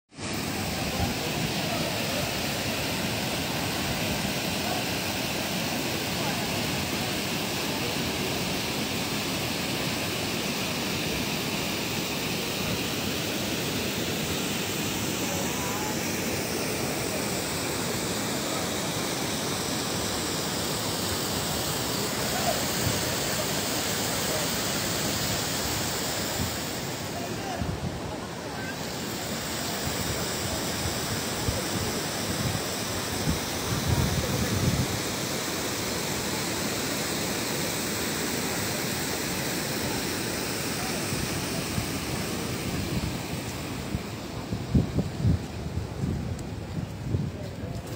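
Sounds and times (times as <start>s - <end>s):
water rushing over a weir: 0.1s - 47.9s.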